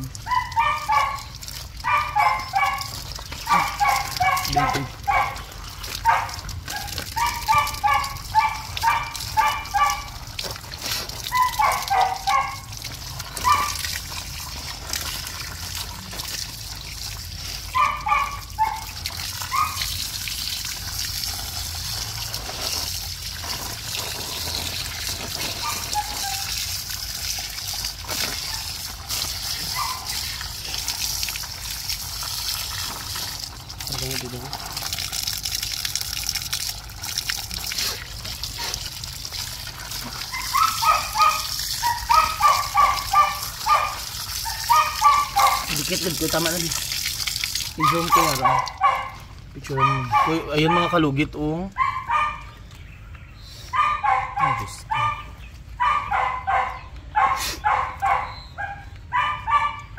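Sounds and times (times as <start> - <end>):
water hissing from hose: 0.0 - 50.3
small dog yelping: 0.2 - 16.8, 17.6 - 20.2, 24.4 - 31.2, 37.6 - 46.6, 47.8 - 52.7, 53.6 - 59.9.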